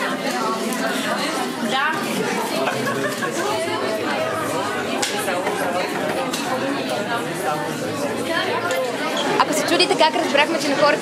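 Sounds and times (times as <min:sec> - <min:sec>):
crowd chatter: 0:00.0 - 0:11.0.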